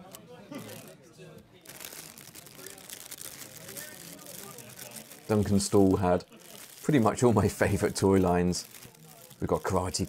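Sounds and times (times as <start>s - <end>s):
plastic bags crinkling: 0.0s - 0.9s, 1.6s - 10.0s
voices chatting: 0.0s - 10.0s.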